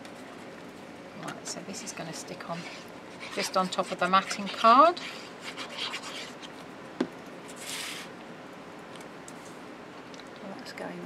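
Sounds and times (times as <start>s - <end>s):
paper being handled and rubbed: 2.3s - 6.6s, 7.5s - 8.1s.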